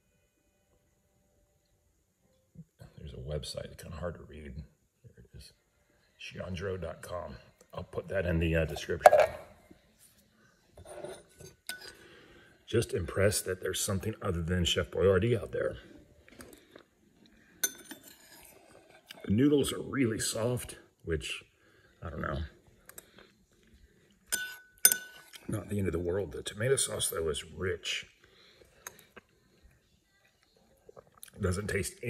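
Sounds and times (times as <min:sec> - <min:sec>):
metal spoon clinking ceramic bowl: 0:10.8 - 0:12.0, 0:17.6 - 0:19.3, 0:24.3 - 0:25.5.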